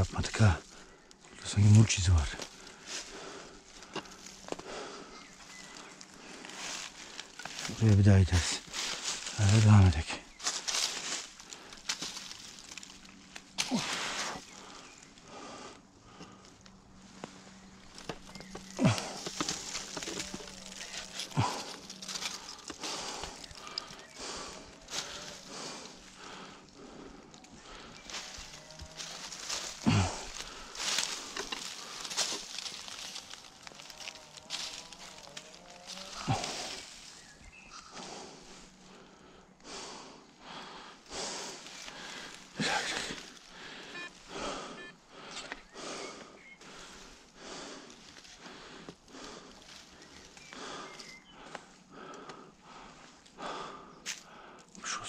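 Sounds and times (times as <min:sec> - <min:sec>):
footsteps in dry leaves: 0:00.0 - 0:15.0, 0:16.9 - 0:26.5, 0:27.6 - 0:37.9, 0:41.4 - 0:44.3
metal detector coil rustling leaves: 0:01.5 - 0:15.2, 0:16.5 - 0:26.3, 0:27.4 - 0:37.8, 0:41.4 - 0:45.6.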